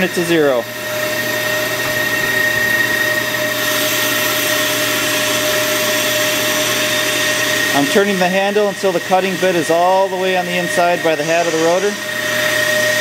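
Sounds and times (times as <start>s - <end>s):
brake lathe motor hum: 0.0s - 13.0s
high-pitched whine: 0.0s - 13.0s.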